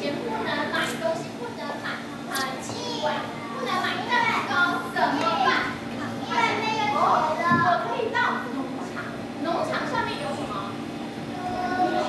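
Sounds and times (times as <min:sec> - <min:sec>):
woman talking: 0:00.0 - 0:06.2, 0:07.0 - 0:10.8
children talking at once: 0:00.0 - 0:12.0.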